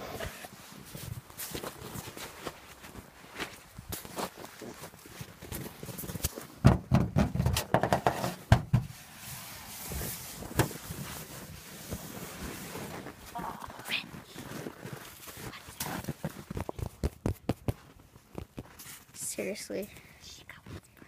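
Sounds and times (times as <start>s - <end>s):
jacket fabric rubbing: 8.1s - 17.4s
hands crunching snow: 9.0s - 17.8s.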